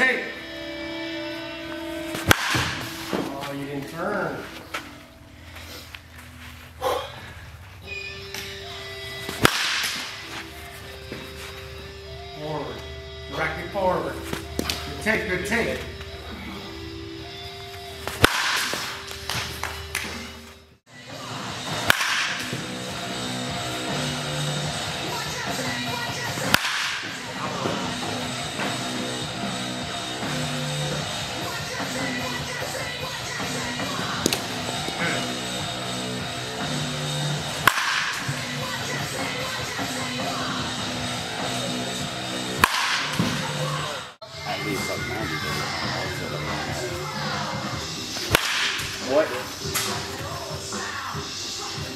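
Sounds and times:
background music: 0:00.0 - 0:51.9
baseball bat cracking ball: 0:02.1 - 0:03.6, 0:09.2 - 0:10.4, 0:14.3 - 0:14.9, 0:18.0 - 0:20.3, 0:21.7 - 0:23.3, 0:26.2 - 0:28.8, 0:34.1 - 0:35.6, 0:37.4 - 0:39.4, 0:42.5 - 0:43.9, 0:48.0 - 0:50.1.

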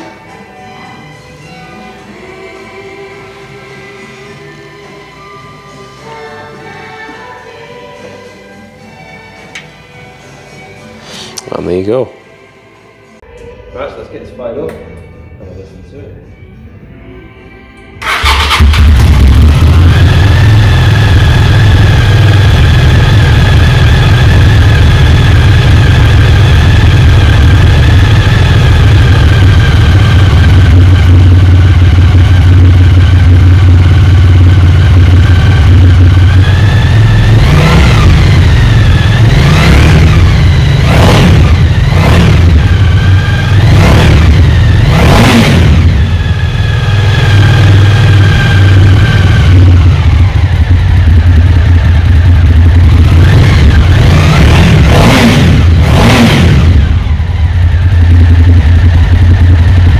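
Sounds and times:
motorcycle engine idling and revving: 0:18.0 - 0:59.9.

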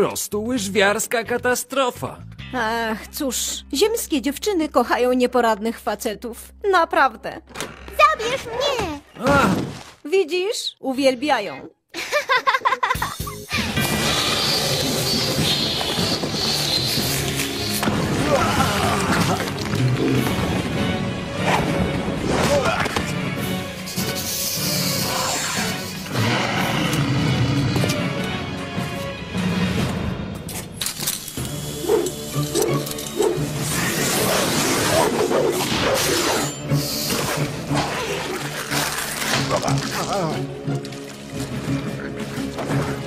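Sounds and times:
cartoon soundtrack music: 0:12.6 - 0:30.5, 0:31.4 - 0:43.0.

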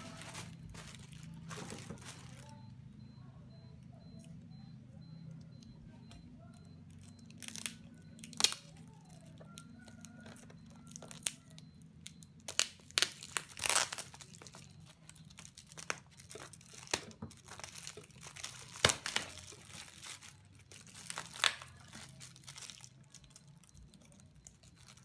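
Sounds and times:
plastic packaging crinkling and tearing: 0:00.0 - 0:02.6, 0:07.0 - 0:09.2, 0:10.9 - 0:25.0.

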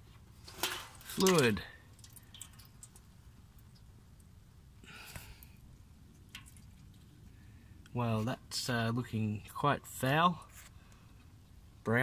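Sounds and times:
fluid trickling into pan: 0:00.4 - 0:04.4, 0:05.2 - 0:07.8.

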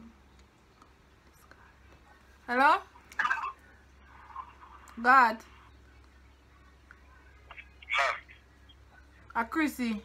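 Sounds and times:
voice through phone speaker: 0:07.5 - 0:08.5.

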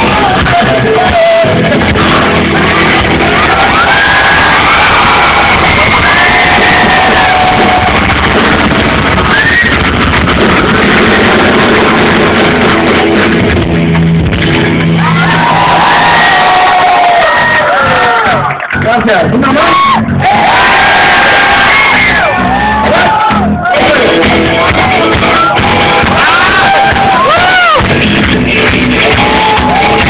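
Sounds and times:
drums: 0:00.0 - 0:30.0
rock band playing live: 0:00.0 - 0:30.0
crowd shouting: 0:01.8 - 0:12.6, 0:15.0 - 0:18.6, 0:19.6 - 0:28.0, 0:28.7 - 0:30.0.

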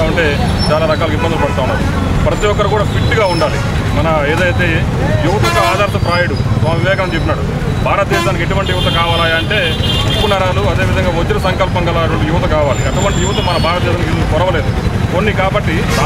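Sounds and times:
man speaking: 0:00.0 - 0:16.0
road traffic rumble: 0:00.0 - 0:16.0.

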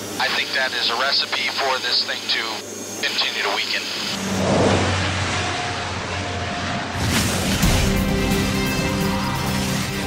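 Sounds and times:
aircraft engine roar: 0:00.0 - 0:10.0
low hum: 0:01.5 - 0:10.0.

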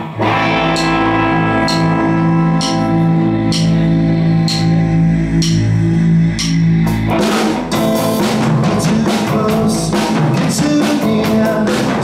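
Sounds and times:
sustained electric guitar chord: 0:00.0 - 0:08.2
low drone: 0:00.0 - 0:08.6
rock band playing: 0:00.0 - 0:12.0
cymbal taps: 0:01.6 - 0:06.6.

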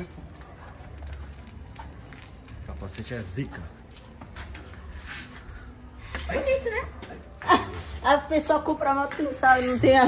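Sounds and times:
rustling and shuffling: 0:03.2 - 0:06.0.

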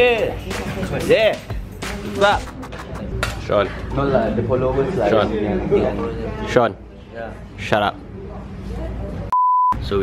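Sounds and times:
low background chatter: 0:02.5 - 0:09.3
censor bleep: 0:09.3 - 0:09.8.

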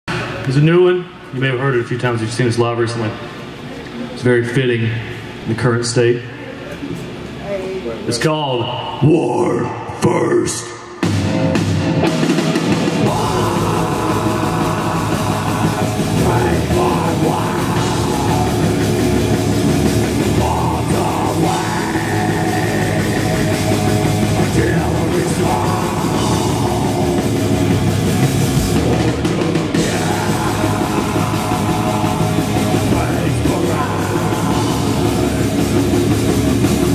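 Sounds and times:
heavy metal band playing live: 0:10.5 - 0:36.9
distorted electric guitar: 0:10.6 - 0:36.9
drum kit: 0:10.9 - 0:36.9
bass guitar: 0:11.0 - 0:36.9.

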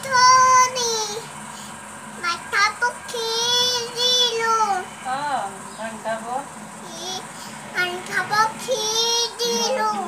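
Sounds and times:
young child singing: 0:00.0 - 0:01.3, 0:02.2 - 0:04.9, 0:07.8 - 0:10.0.

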